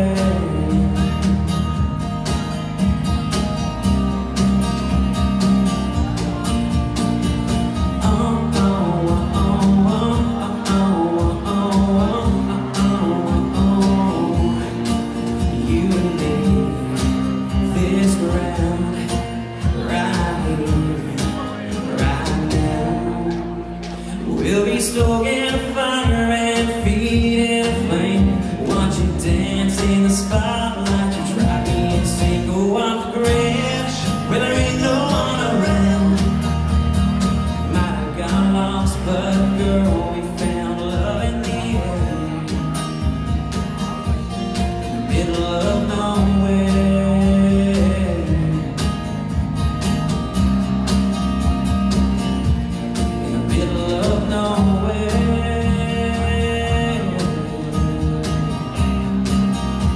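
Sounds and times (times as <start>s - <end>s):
man singing: 0.0s - 1.9s, 7.6s - 36.8s, 37.5s - 49.5s, 52.4s - 59.9s
acoustic country band playing: 0.0s - 59.9s.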